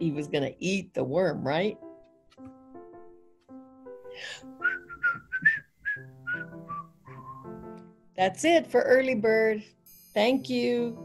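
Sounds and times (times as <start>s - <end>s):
soft keyboard chords: 1.3s - 5.3s
whistled melody: 4.1s - 7.9s.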